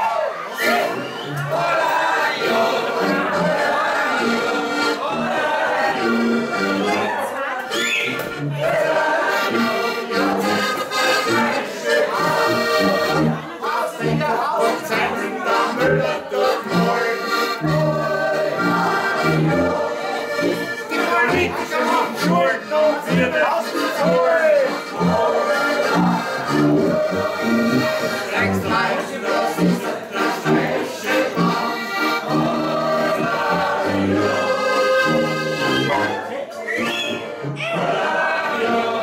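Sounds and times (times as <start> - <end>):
button accordions playing folk music: 0.0 - 39.0
tuba bass notes: 0.6 - 7.2, 8.1 - 36.2.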